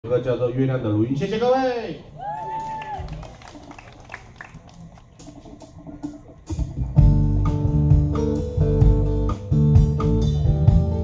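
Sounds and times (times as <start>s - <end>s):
low crowd noise: 0.0s - 11.0s
audience clapping: 2.2s - 5.7s.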